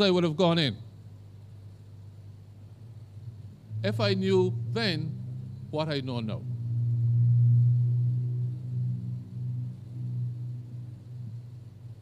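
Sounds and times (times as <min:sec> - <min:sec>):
low droning tone: 0:02.0 - 0:12.0.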